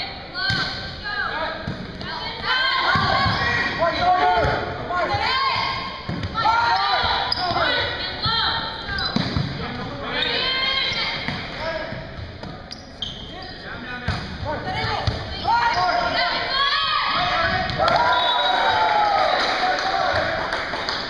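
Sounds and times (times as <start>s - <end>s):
volleyball slaps: 0.4s - 0.8s, 6.0s - 6.4s, 9.1s - 9.6s, 14.0s - 15.3s, 17.4s - 18.2s.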